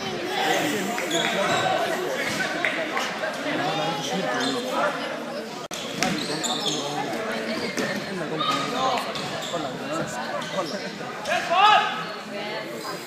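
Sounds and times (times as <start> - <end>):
voices echoing in a hall: 0.0 - 13.0.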